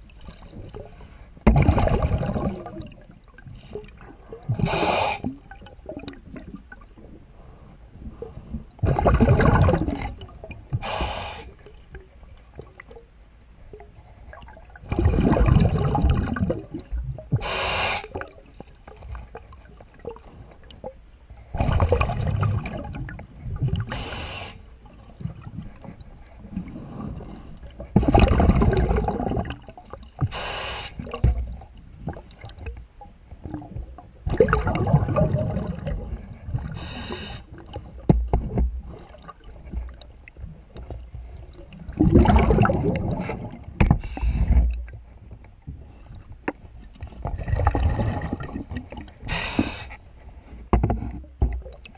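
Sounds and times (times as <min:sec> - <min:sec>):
diver exhaling bubbles underwater: 0:00.5 - 0:03.1, 0:08.1 - 0:11.4, 0:14.3 - 0:18.4, 0:21.5 - 0:24.3, 0:26.5 - 0:31.4, 0:33.5 - 0:37.8, 0:41.8 - 0:44.7, 0:47.3 - 0:49.9
regulator hiss: 0:04.6 - 0:05.3, 0:10.8 - 0:11.6, 0:17.4 - 0:18.2, 0:23.9 - 0:24.8, 0:30.3 - 0:31.0, 0:36.8 - 0:37.5, 0:49.3 - 0:50.0.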